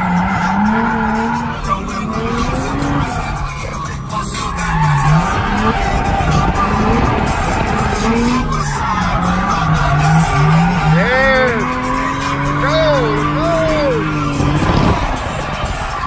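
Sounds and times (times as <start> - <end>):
car engine running inside cabin: 0.0 - 16.0
tyre squeals: 0.0 - 16.0.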